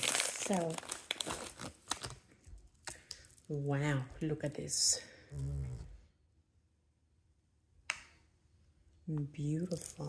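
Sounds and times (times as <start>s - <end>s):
plastic bag crinkling: 0.0s - 2.3s.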